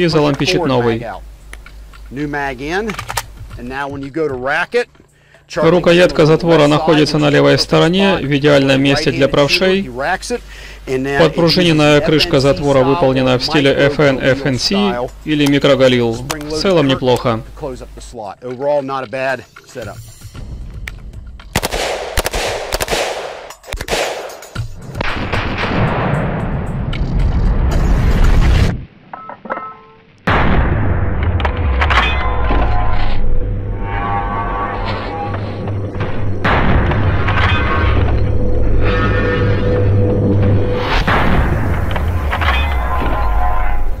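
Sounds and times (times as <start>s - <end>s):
man speaking: 0.0s - 1.2s, 2.1s - 3.0s, 5.5s - 20.0s
rifle shots with ringing echo: 21.5s - 26.2s.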